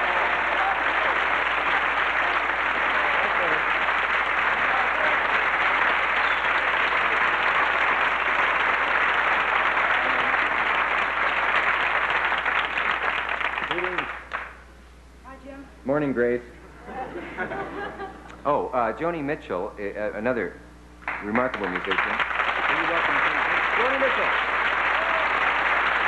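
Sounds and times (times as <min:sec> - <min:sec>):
studio audience applauding: 0:00.0 - 0:14.6, 0:21.0 - 0:26.0.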